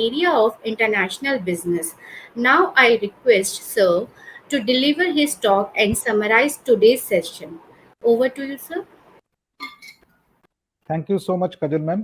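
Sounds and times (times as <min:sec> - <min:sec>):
man speaking: 0:10.9 - 0:12.0.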